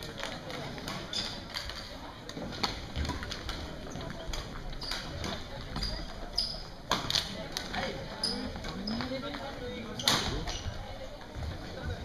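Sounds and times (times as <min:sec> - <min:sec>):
voices chattering: 0:00.0 - 0:12.0
shoes squeaking on floor: 0:00.8 - 0:06.9, 0:07.8 - 0:12.0.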